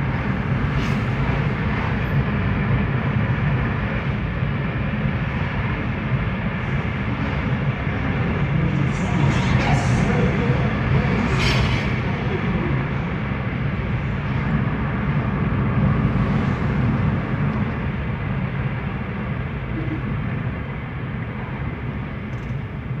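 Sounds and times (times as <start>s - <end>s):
car engine and road noise: 0.0s - 22.9s.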